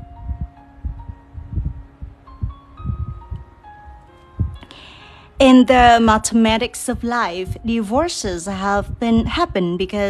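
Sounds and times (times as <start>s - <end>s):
dull low thumps: 0.0s - 4.6s, 5.4s - 9.6s
soft chime-like music: 0.0s - 8.9s.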